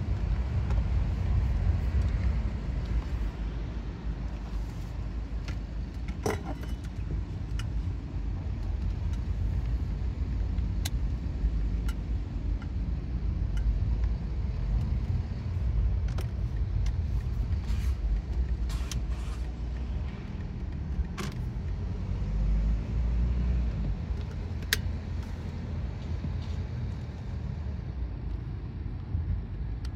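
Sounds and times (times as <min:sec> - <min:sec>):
car interior rumble: 0:00.0 - 0:29.9.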